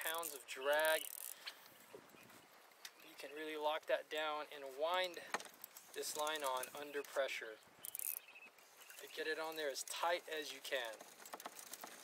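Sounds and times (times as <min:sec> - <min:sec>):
fishing reel being cranked: 0:00.0 - 0:01.6, 0:07.8 - 0:08.3.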